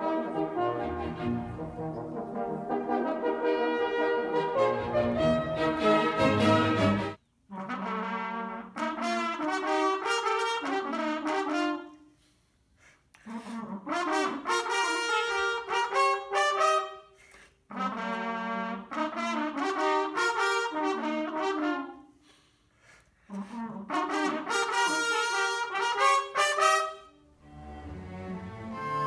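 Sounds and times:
horn duet playing calls: 0:00.0 - 0:12.0, 0:13.3 - 0:22.0, 0:23.3 - 0:29.0.

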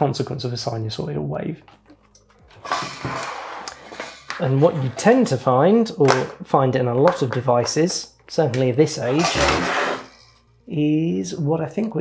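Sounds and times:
handling noise rustling scrape: 0:02.5 - 0:05.2, 0:09.1 - 0:10.5.

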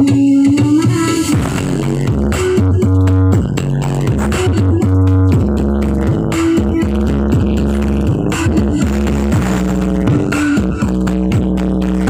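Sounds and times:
electronic dance music with heavy bass: 0:00.0 - 0:12.0.

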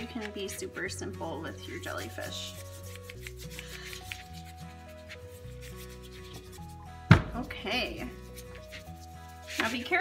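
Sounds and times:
paintbrush scrubbing paper: 0:00.0 - 0:06.9, 0:07.7 - 0:10.0
soft background music: 0:00.0 - 0:10.0.

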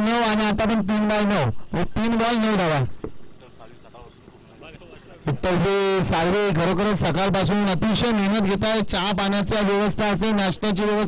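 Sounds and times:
commentary speech: 0:00.0 - 0:11.0
distant voices: 0:00.0 - 0:11.0.

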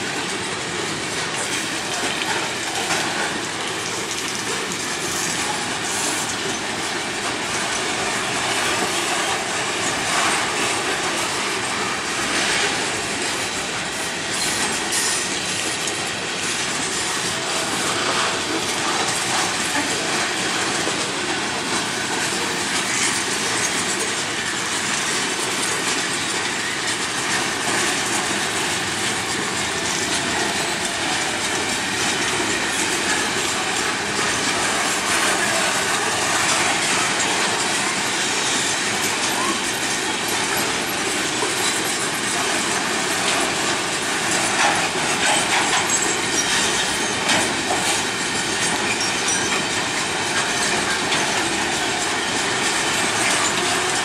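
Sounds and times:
freight train wheels rattling: 0:00.0 - 0:54.0.

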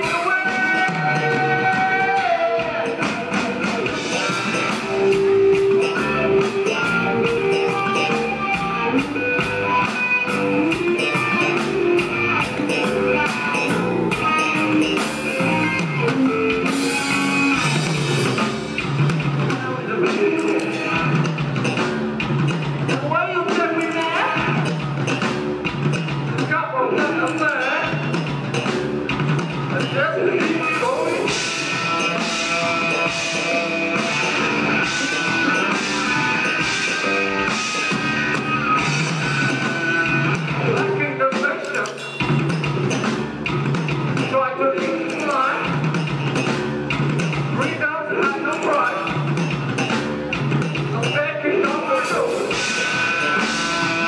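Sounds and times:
man singing lead: 0:00.0 - 0:08.1, 0:19.5 - 0:21.2, 0:29.7 - 0:36.4, 0:44.2 - 0:45.8, 0:47.6 - 0:49.2, 0:50.9 - 0:54.0
drum kit: 0:00.0 - 0:54.0
electric bass: 0:00.0 - 0:54.0
electric guitar: 0:00.0 - 0:54.0
live rock band playing: 0:00.0 - 0:54.0
voice at microphone: 0:19.5 - 0:21.2, 0:22.9 - 0:24.7, 0:26.4 - 0:28.0, 0:29.7 - 0:31.4, 0:40.6 - 0:42.0, 0:44.3 - 0:45.7, 0:47.6 - 0:49.2, 0:50.9 - 0:53.0.

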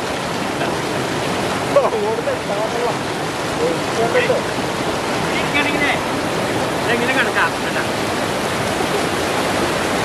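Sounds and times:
river rapids rushing over rocks: 0:00.0 - 0:10.0.

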